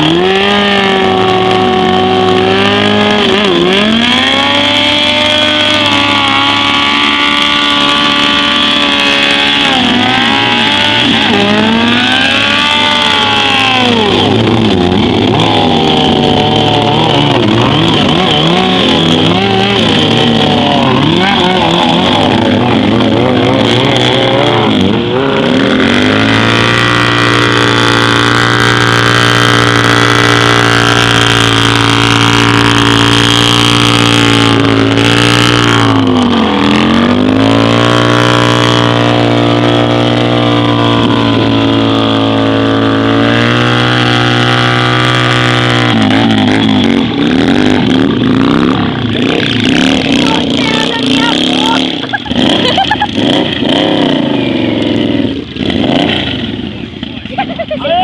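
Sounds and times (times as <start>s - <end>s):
cruiser engine at high revs: 0.0s - 58.0s
motorcycle engine revving: 0.0s - 58.0s.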